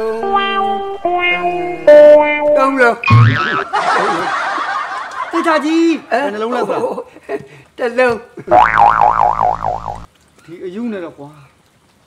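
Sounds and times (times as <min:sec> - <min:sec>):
cartoon boing sound effect: 0:01.9 - 0:03.7, 0:08.5 - 0:10.1.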